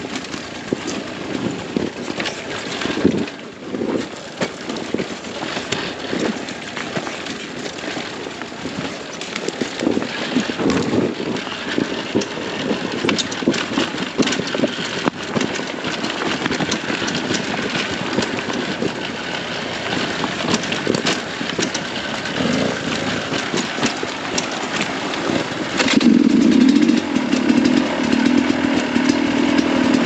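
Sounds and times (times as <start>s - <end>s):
wind noise on microphone: 0.0s - 5.1s, 8.6s - 30.0s
bike knocking and rattling: 0.0s - 30.0s
dirt bike engine running: 0.0s - 30.0s.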